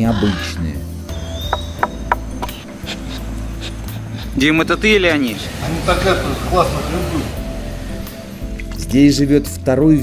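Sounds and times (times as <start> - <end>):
peccaries making low noises: 0.0 - 4.4.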